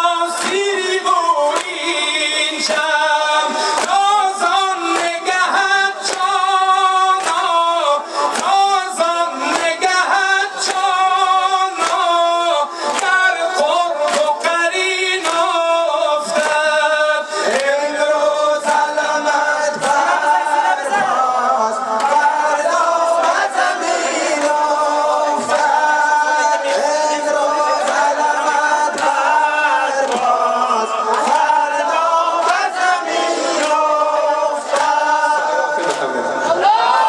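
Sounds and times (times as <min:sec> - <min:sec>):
man singing unaccompanied: 0:00.0 - 0:36.6.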